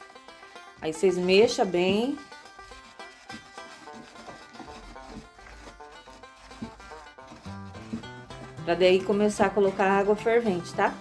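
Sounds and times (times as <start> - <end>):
plucked string music: 0.0 - 11.0
stick stirring thick mixture in bucket: 0.0 - 11.0.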